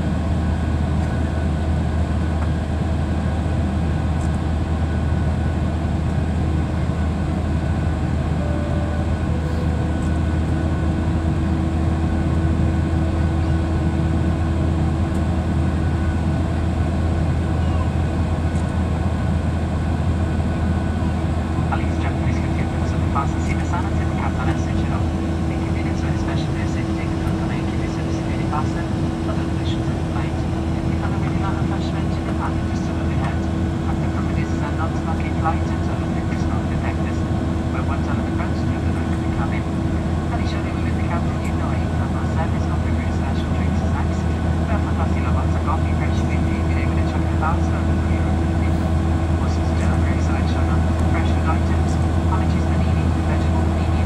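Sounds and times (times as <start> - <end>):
airplane cabin engine drone: 0.0 - 54.0
constant hum: 0.0 - 54.0.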